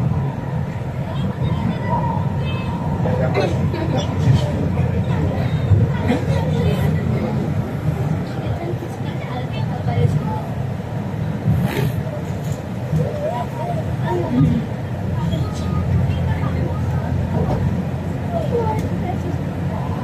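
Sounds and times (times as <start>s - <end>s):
faint passenger chatter: 0.0s - 20.0s
train rumbling on track: 0.0s - 20.0s.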